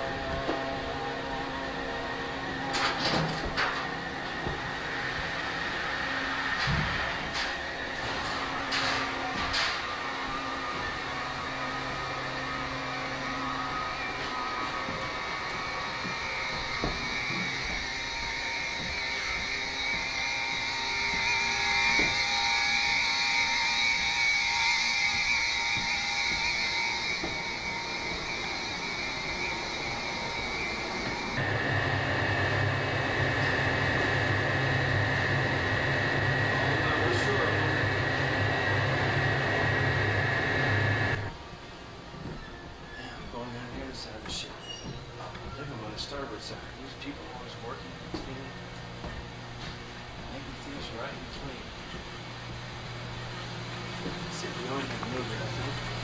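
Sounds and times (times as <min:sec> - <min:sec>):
deep fan hum: 0:00.0 - 0:56.0
ventilation and machinery hum: 0:00.0 - 0:56.0.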